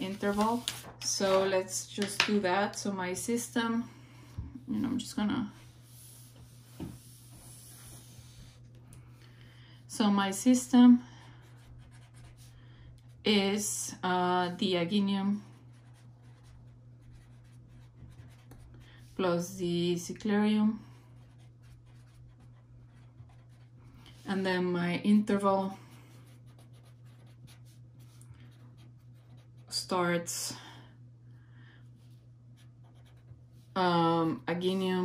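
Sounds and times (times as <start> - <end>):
steady low hum: 0.0 - 35.0.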